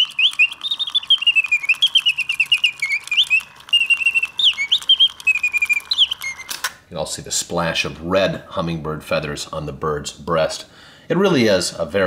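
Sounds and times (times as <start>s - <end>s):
mechanical bird whistling chirps: 0.0s - 6.7s.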